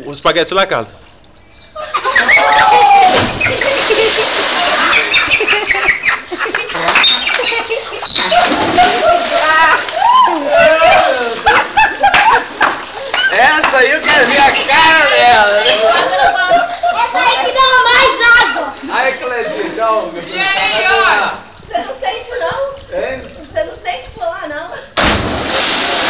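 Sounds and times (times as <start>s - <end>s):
children shrieking and shouting: 2.0s - 3.8s, 9.3s - 11.4s, 17.0s - 18.8s
splash into swimming pool: 2.0s - 5.8s, 6.8s - 15.3s, 25.0s - 26.0s
water churning: 2.1s - 6.3s, 7.7s - 16.1s, 25.0s - 26.0s.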